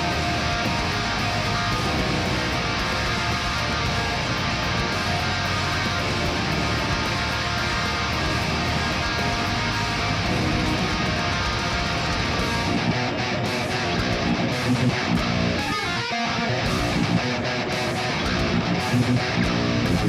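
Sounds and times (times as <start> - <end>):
electric guitar metal riffs: 0.0 - 20.0.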